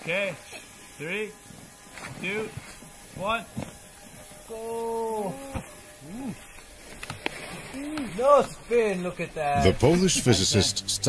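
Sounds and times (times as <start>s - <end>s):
person exclaiming: 4.5s - 6.4s
people's voices outdoors: 4.5s - 11.0s.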